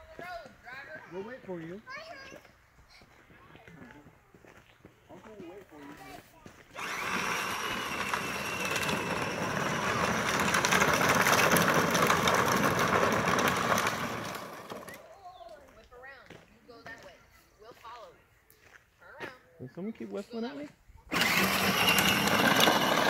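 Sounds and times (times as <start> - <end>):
electric motors whining: 6.8 - 15.0, 21.1 - 23.0
plastic wheels rattling on asphalt: 6.8 - 15.0, 21.1 - 23.0.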